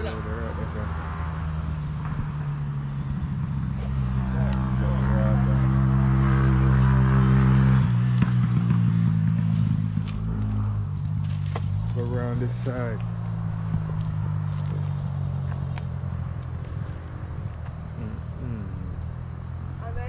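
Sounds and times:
vehicle engine running: 0.0s - 20.0s
person speaking: 18.0s - 19.0s.

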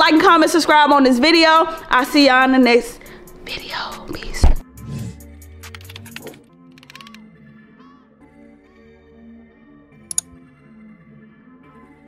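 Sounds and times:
steady low music tones: 1.3s - 6.9s.

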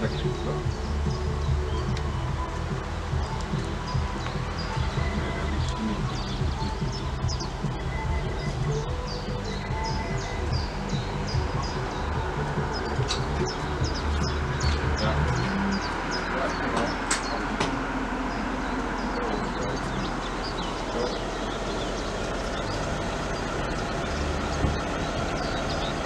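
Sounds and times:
small birds chirping: 0.0s - 26.0s
steady low rumble: 0.0s - 26.0s.

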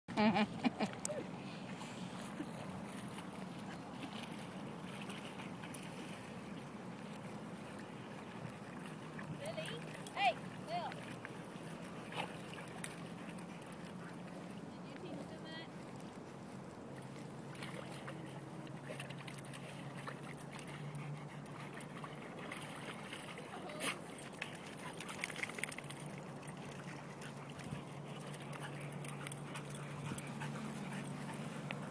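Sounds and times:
paws splashing in mud: 1.8s - 31.9s.

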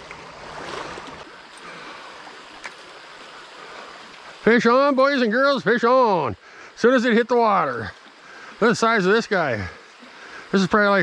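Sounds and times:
creek water flowing: 0.0s - 11.0s.

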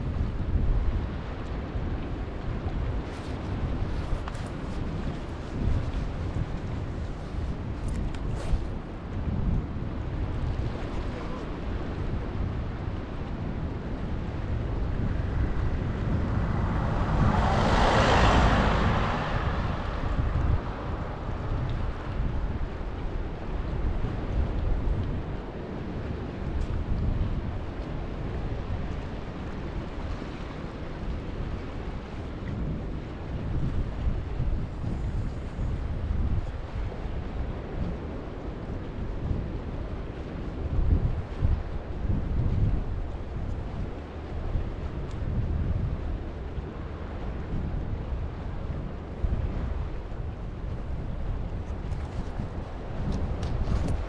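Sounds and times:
wind rumbling on microphone: 0.0s - 54.0s.

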